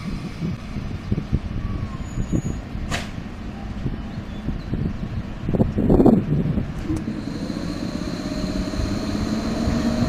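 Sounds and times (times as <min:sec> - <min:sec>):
train approaching rumble: 0:06.2 - 0:10.0.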